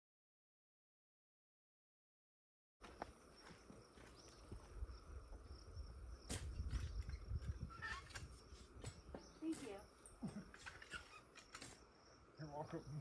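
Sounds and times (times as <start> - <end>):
faint footsteps: 2.8 - 5.5
insect buzzing: 3.3 - 13.0.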